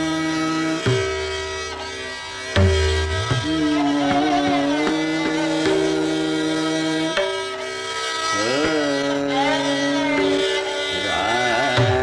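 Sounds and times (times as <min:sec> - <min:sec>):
classical melody over drone: 0:00.0 - 0:11.8.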